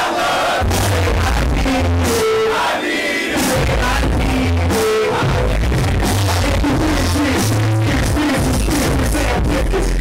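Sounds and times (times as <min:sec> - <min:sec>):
crowd noise: 0:00.0 - 0:10.0
hip-hop music with heavy bass: 0:00.5 - 0:10.0.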